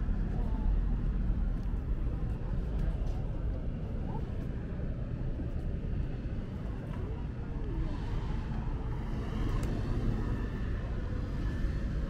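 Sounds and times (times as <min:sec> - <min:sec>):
faint voices of passers-by: 0:00.0 - 0:12.0
road traffic rumble: 0:00.0 - 0:12.0.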